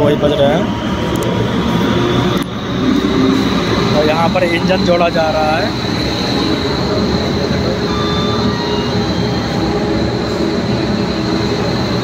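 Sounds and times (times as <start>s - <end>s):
locomotive engine rumbling: 0.0s - 12.0s
thin high whine: 0.0s - 12.0s.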